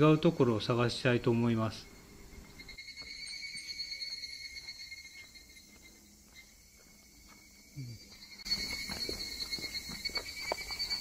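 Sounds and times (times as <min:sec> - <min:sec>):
cicada buzzing: 0:00.0 - 0:11.0
footsteps on forest floor: 0:04.0 - 0:11.0.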